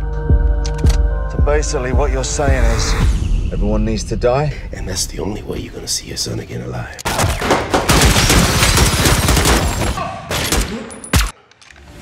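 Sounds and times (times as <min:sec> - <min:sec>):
rapid gunfire: 0:07.2 - 0:10.6.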